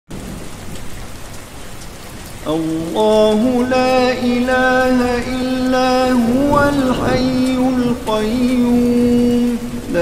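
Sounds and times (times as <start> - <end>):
steady rain falling: 0.1 - 10.0.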